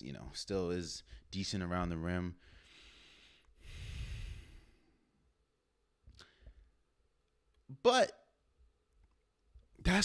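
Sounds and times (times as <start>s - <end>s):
man breathing into microphone: 2.4s - 5.0s.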